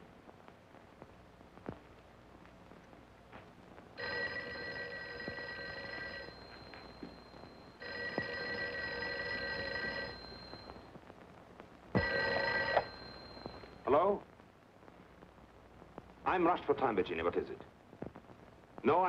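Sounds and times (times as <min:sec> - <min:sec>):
telephone bell ringing: 0:04.0 - 0:10.9, 0:12.0 - 0:13.9.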